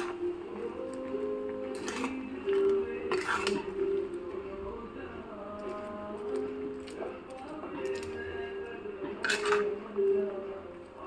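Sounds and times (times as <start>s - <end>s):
metal spatula scraping pan: 0.0s - 0.4s, 1.4s - 4.5s, 7.7s - 10.2s.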